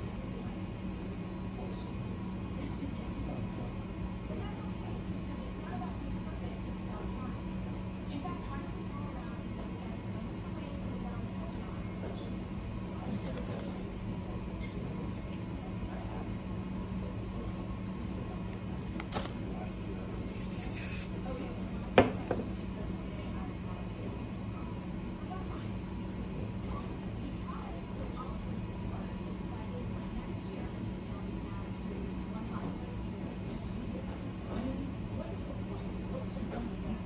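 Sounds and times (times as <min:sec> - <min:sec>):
faint television sound: 0:00.0 - 0:37.0
low room hum: 0:00.0 - 0:37.0
aerosol spray hiss: 0:20.2 - 0:21.2.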